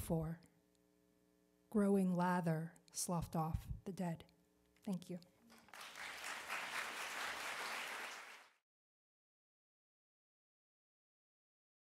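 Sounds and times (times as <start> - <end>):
audience applauding: 5.5 - 8.6.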